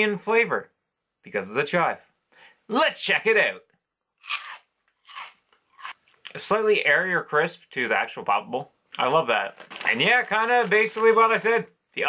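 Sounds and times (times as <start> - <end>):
crisps crunching while chewing: 4.2 - 6.0, 9.6 - 11.4.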